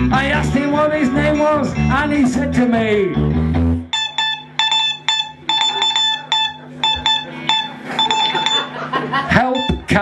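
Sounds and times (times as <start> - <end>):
morse code beeps: 3.9 - 8.9, 9.5 - 10.0.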